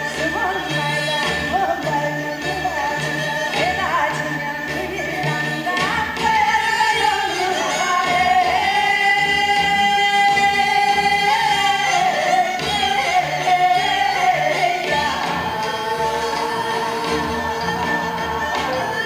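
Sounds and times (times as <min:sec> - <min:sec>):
instrumental backing music: 0:00.0 - 0:19.0
person singing long notes: 0:00.0 - 0:19.0.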